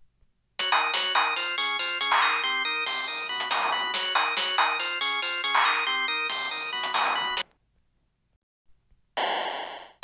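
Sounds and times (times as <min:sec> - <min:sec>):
synthesizer tune with beeping tones: 0:00.6 - 0:07.4.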